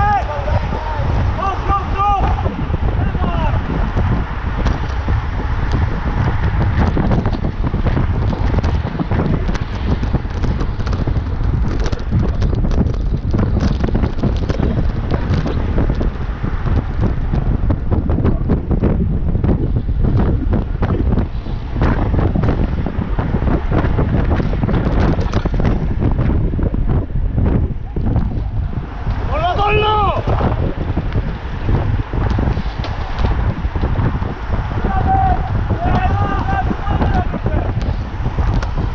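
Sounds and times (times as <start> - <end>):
wind buffeting microphone: 0.0 - 38.9
person calling out: 29.3 - 30.3, 34.8 - 37.4.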